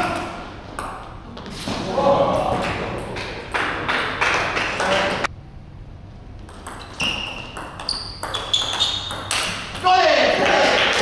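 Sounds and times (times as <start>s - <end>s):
table tennis ball bouncing: 0.2s - 1.2s, 6.4s - 10.0s.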